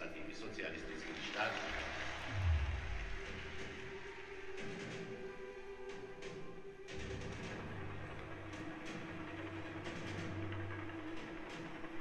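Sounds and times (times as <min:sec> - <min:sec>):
deep bass boom: 0:02.3 - 0:04.1
held drone note: 0:02.3 - 0:04.1.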